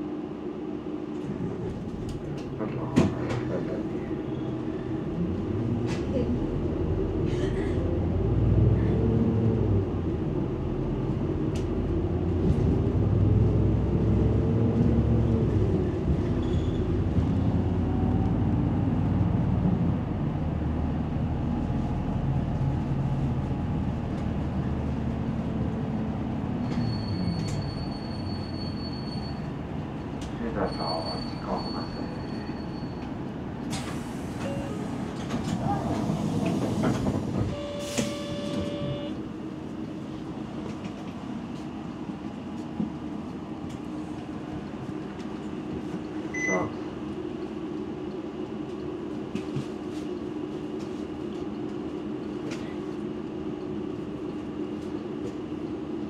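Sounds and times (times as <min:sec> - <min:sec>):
large vehicle engine rumbling: 0:00.2 - 0:56.0.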